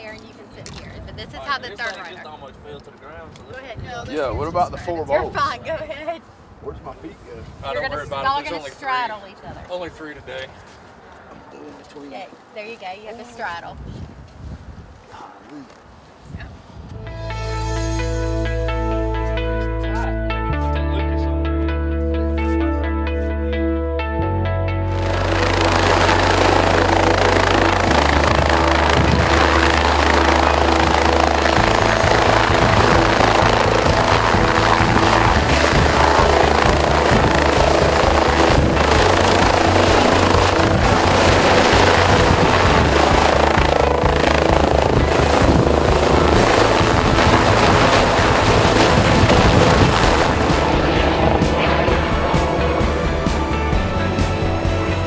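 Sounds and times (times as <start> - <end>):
background music with bass line: 17.0 - 55.0
helicopter rotor and engine: 24.9 - 55.0.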